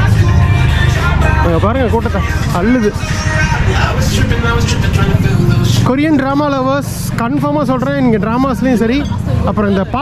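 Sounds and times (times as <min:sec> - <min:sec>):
chatter of passers-by: 0:00.0 - 0:10.0
low traffic rumble: 0:00.0 - 0:10.0.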